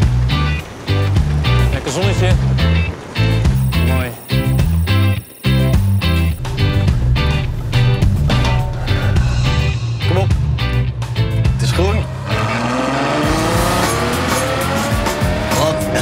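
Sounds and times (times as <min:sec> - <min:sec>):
background music with beat: 0:02.5 - 0:11.8, 0:13.2 - 0:16.0
car engine accelerating hard: 0:11.6 - 0:16.0.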